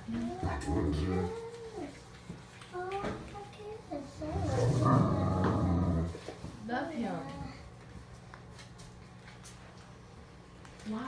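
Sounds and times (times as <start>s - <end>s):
dog whining moan: 0.1s - 1.9s, 4.2s - 6.2s.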